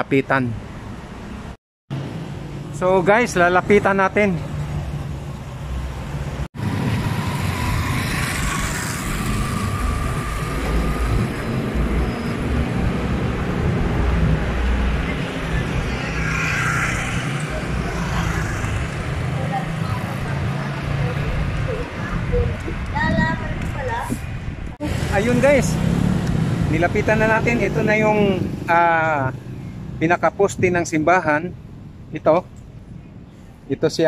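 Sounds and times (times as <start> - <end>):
cars and motorcycles passing: 0.0 - 34.0.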